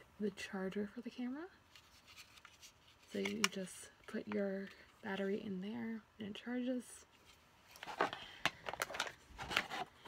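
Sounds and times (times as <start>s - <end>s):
hands handling box clicks and rustles: 7.7s - 10.0s.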